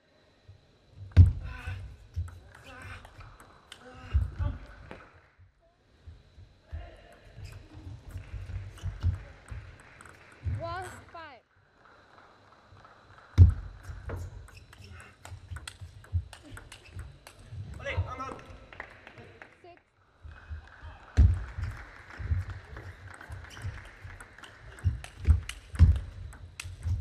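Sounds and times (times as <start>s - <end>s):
table tennis ball clicking: 7.1s - 11.0s, 13.4s - 18.4s, 21.6s - 27.0s.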